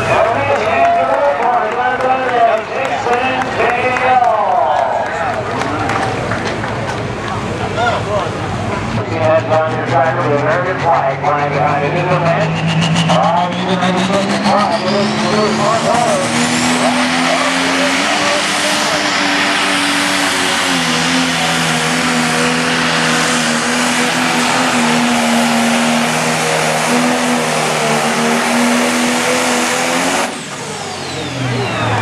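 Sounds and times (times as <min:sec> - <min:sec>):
diesel engine at full throttle: 0:00.0 - 0:32.0
turbo whistle spooling down: 0:29.8 - 0:32.0.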